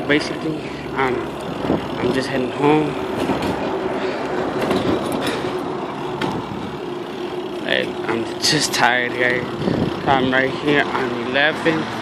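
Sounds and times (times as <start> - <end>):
constant low hum: 0.0 - 11.8
street traffic: 0.0 - 12.0.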